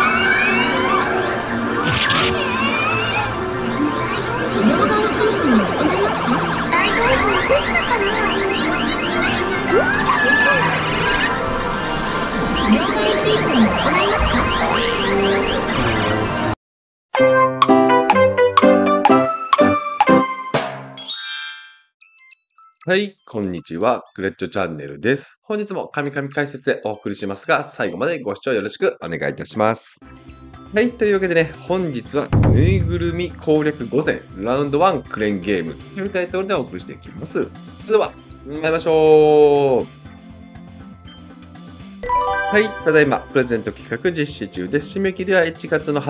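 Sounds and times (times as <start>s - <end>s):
electronic arcade music: 0.0s - 15.7s, 32.4s - 33.9s, 42.0s - 44.0s
intro music jingle: 42.0s - 43.7s
bright chime ringing: 42.0s - 43.9s.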